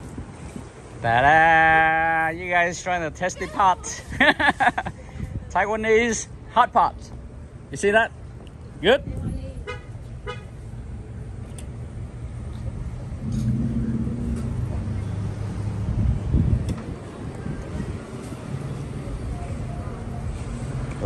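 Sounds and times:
car driving past: 13.0 - 17.1.

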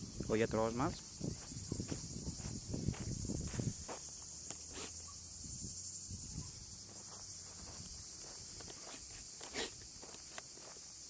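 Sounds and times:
high insect chorus: 0.0 - 11.0
footsteps on dirt: 0.9 - 4.9, 6.8 - 10.9.

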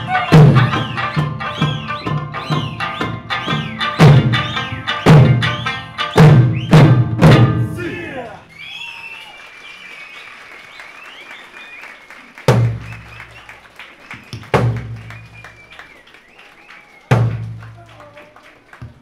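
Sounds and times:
people clapping: 0.0 - 3.8, 8.1 - 19.0
high wavering whistles: 0.0 - 7.0, 8.5 - 12.0
large drum strikes: 4.0 - 7.8.

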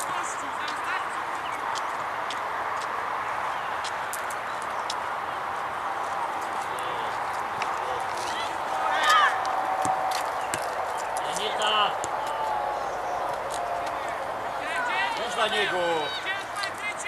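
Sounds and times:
players shouting: 5.9 - 17.0.

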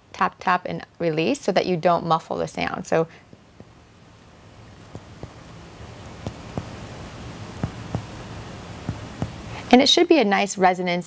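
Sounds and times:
finger taps on a bare back: 4.9 - 5.4, 6.1 - 6.8, 7.6 - 8.2, 8.8 - 9.4.

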